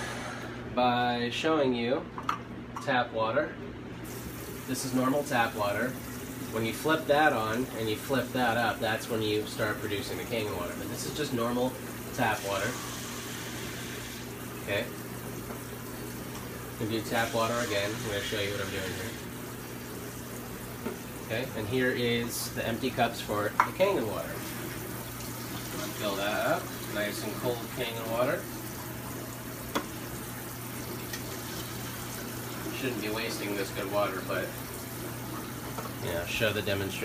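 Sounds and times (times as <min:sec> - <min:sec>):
faucet running into sink: 0:04.0 - 0:37.0.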